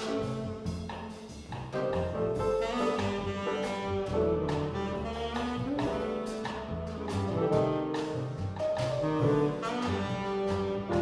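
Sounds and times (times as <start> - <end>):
drums: 0.0 - 11.0
piano chords: 0.0 - 11.0
upright bass: 0.0 - 11.0.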